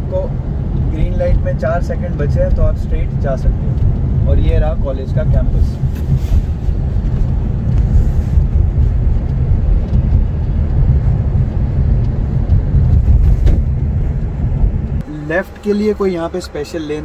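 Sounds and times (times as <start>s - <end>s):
car engine: 0.0s - 17.0s
road and tyre noise: 0.0s - 17.0s.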